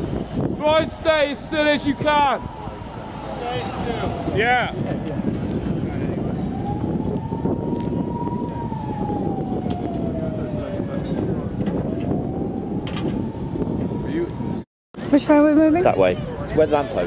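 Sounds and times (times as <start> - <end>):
emergency vehicle siren wailing: 0.0 - 17.0
loud steady outdoor rush: 0.0 - 17.0.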